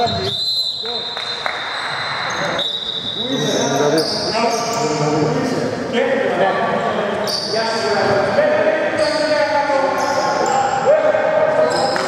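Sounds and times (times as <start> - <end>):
players' voices: 2.2 - 12.0.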